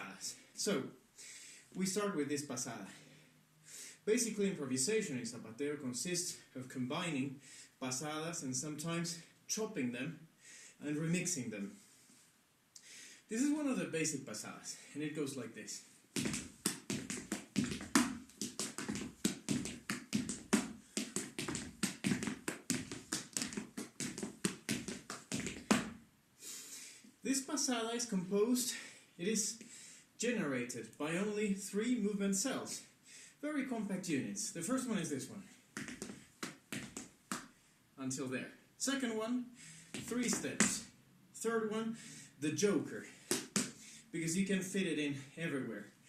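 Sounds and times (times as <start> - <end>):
dancer's percussive foot strikes: 16.2 - 26.0, 35.8 - 37.5, 40.0 - 40.8, 43.3 - 43.8
hand slaps: 16.2 - 26.0, 43.3 - 43.8
shoes stamping on wooden floor: 16.2 - 26.0, 35.8 - 37.4, 40.0 - 40.8, 43.3 - 43.8.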